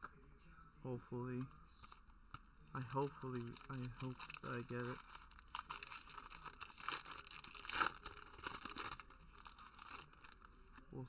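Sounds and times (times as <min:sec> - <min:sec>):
foil wrapper tearing and crinkling: 0:02.8 - 0:10.5.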